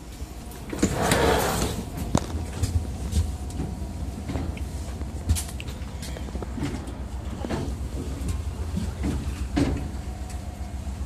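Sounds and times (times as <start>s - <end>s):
low rumble of standing train: 0.0s - 11.0s.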